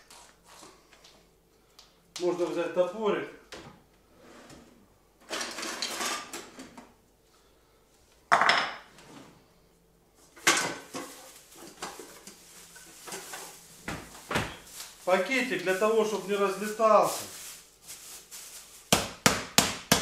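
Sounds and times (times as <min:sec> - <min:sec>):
metal kitchenware clattering: 0:05.3 - 0:06.6, 0:10.4 - 0:13.5.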